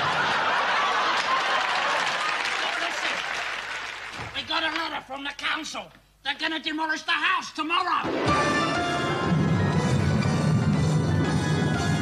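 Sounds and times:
audience laughing: 0:00.0 - 0:03.2
audience applauding: 0:00.0 - 0:04.8.

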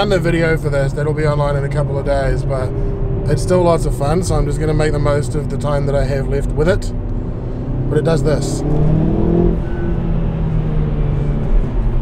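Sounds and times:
car engine pulling hard: 0:00.0 - 0:12.0.

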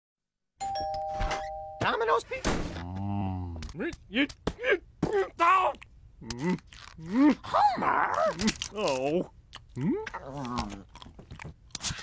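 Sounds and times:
doorbell two-note chime: 0:00.6 - 0:02.0.

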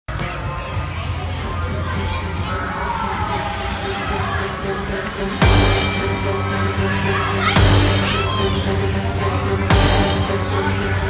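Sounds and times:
children shouting and playing: 0:00.1 - 0:11.0.

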